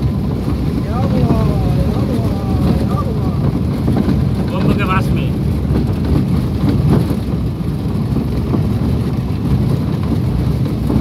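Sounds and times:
vehicle road noise: 0.0 - 11.0
wind buffeting microphone: 0.0 - 11.0.

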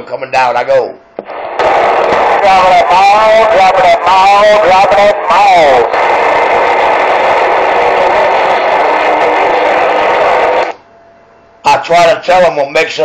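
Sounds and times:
radio static rush: 1.2 - 10.8
faint steady tones: 1.2 - 11.6.

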